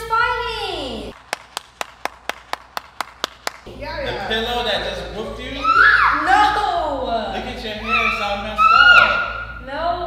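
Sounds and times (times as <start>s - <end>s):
person clapping hands: 1.2s - 3.7s.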